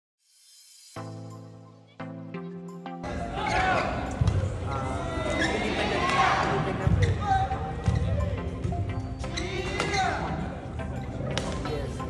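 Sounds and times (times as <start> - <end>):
spectators' voices: 3.0 - 12.0
feet thudding and squeaking on court: 3.5 - 10.3
racket striking shuttle: 11.3 - 11.6.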